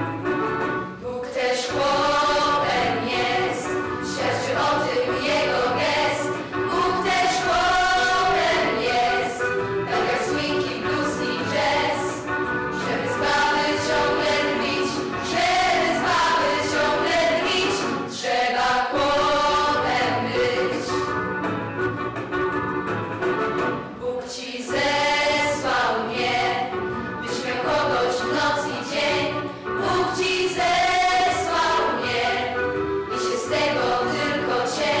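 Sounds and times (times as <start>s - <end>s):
girls singing together: 1.0s - 21.0s, 24.0s - 35.0s.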